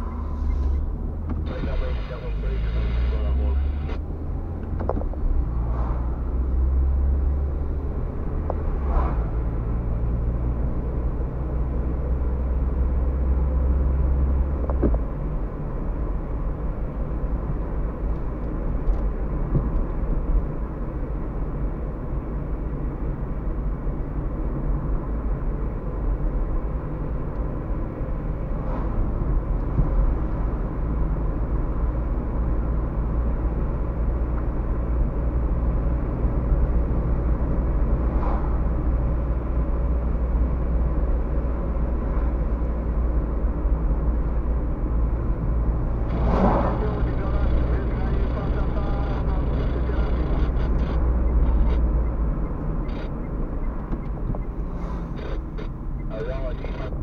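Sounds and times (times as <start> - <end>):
car interior road rumble: 0.0 - 57.0.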